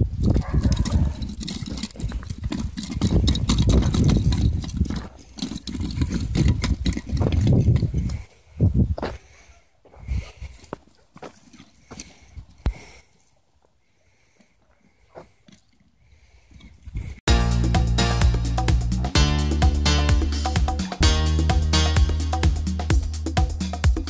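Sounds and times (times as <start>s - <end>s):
footsteps crunching on gravel: 8.9s - 12.3s.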